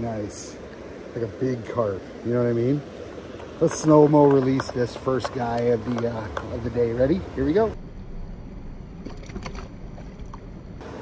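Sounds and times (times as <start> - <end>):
water sloshing and splashing: 0.0 - 7.7, 9.0 - 11.0
steady low rumble: 0.0 - 11.0.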